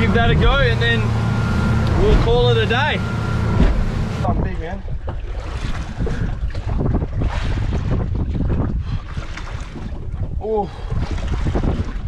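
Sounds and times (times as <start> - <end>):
water slapping boat hull: 0.0 - 12.0
wind buffeting microphone: 0.0 - 12.0.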